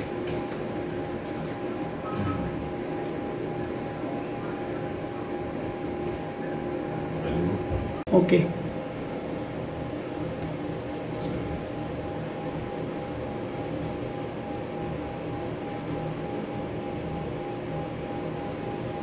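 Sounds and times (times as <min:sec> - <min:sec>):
low hum and hiss: 0:00.0 - 0:19.0.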